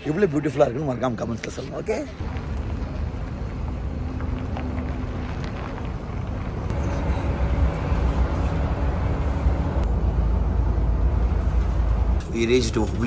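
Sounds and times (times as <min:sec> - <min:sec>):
bus engine rumbling: 0:00.0 - 0:13.0.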